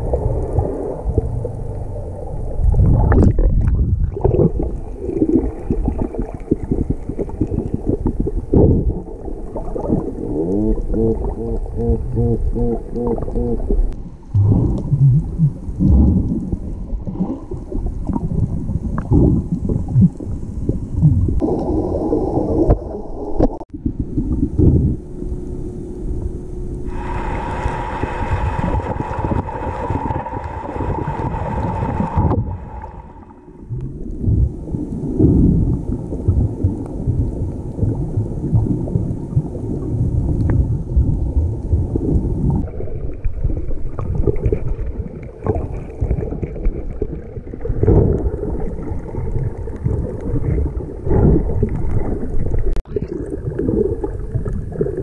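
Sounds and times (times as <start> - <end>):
underwater churn of moving water: 0.0 - 55.0
steady hum with held tones: 6.7 - 43.7.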